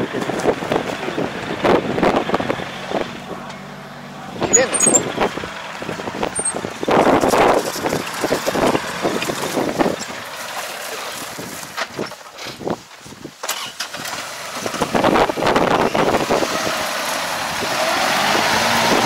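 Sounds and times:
tractor diesel engine running: 0.0s - 19.0s.

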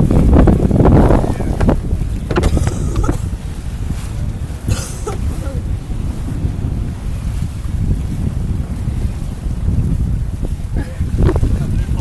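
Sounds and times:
sea rushing along hull: 0.0s - 12.0s
wind buffeting microphone: 0.0s - 12.0s.

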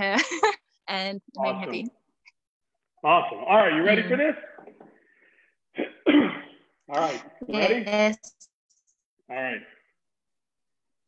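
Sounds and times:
person clearing throat: 5.8s - 7.3s.

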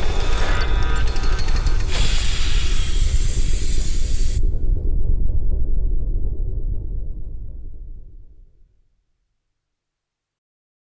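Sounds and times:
steady deep rumble: 0.0s - 8.7s
loud hissing: 1.9s - 4.5s.

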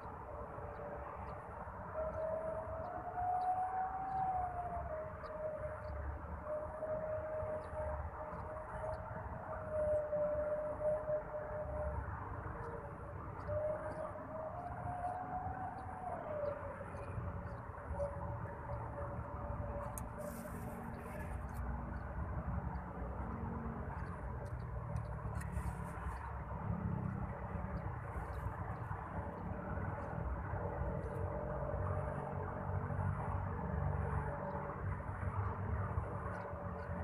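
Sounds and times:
wavering siren: 0.0s - 37.0s.

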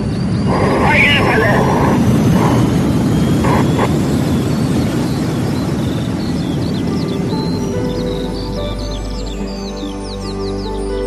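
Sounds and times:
rocket launch roar: 0.0s - 7.0s
birds chirping: 0.0s - 11.0s
soft music: 0.0s - 11.0s.

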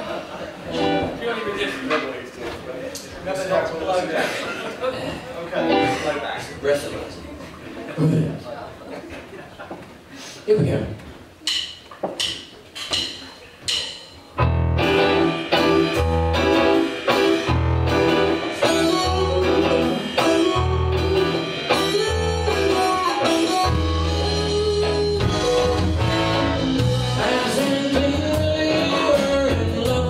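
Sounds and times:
bass guitar: 0.7s - 1.2s, 14.4s - 30.0s
electric guitars: 0.7s - 1.2s, 5.6s - 6.1s, 14.4s - 30.0s
live rock band playing: 0.7s - 1.2s, 5.6s - 6.1s, 13.7s - 30.0s
drum kit: 11.4s - 30.0s
keyboards: 13.7s - 30.0s.

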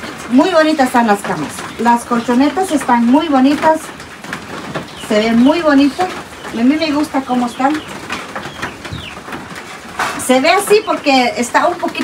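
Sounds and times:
bird calling: 4.6s - 11.5s.

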